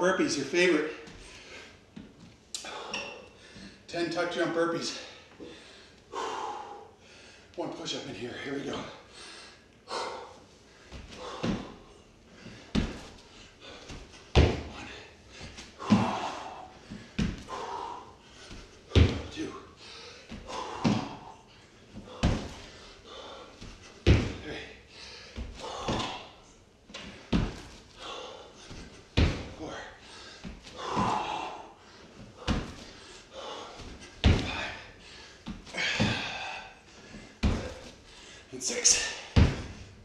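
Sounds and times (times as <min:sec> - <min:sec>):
hard breathing: 0:02.6 - 0:03.9, 0:04.8 - 0:07.6, 0:08.6 - 0:40.0
thuds on hardwood floor: 0:12.7 - 0:13.2, 0:13.9 - 0:14.8, 0:15.8 - 0:16.3, 0:17.0 - 0:17.5, 0:18.5 - 0:19.3, 0:20.3 - 0:21.2, 0:22.2 - 0:22.7, 0:24.0 - 0:24.4, 0:25.4 - 0:26.2, 0:27.3 - 0:27.8, 0:28.7 - 0:29.6, 0:32.4 - 0:32.9, 0:33.8 - 0:34.8, 0:37.4 - 0:37.9, 0:39.4 - 0:39.8.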